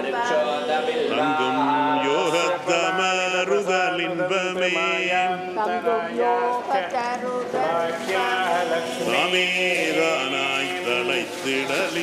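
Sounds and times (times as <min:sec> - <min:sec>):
person chanting held notes: 0:00.0 - 0:12.0.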